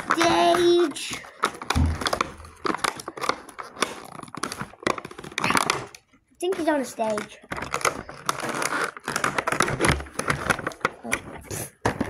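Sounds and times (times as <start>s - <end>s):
plastic packaging crinkling: 0.0s - 12.0s.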